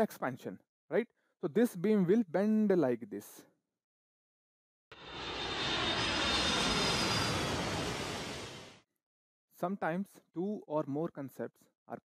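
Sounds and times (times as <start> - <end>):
jet airplane flyby: 4.9 - 8.8
faint high whine: 5.0 - 8.6.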